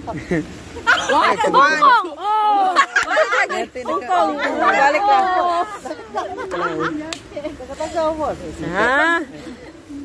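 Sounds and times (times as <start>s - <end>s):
women laughing: 0.0s - 8.2s
women chattering: 0.8s - 10.0s.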